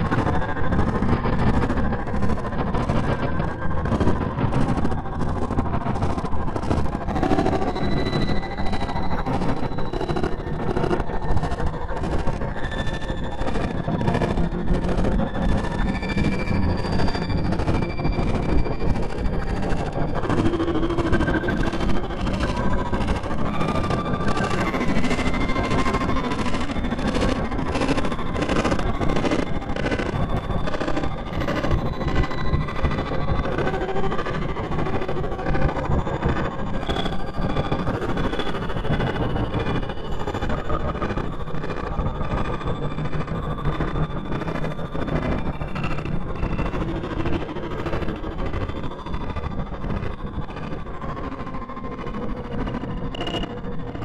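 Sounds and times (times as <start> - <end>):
dark ambient drone music: 0.0 - 54.0.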